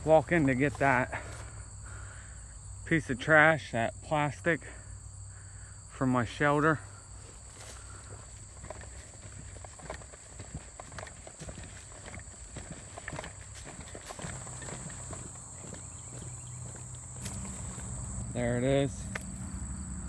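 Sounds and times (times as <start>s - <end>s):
footsteps through grass: 0.0s - 1.6s, 7.1s - 19.6s
insects chorus: 0.0s - 20.0s.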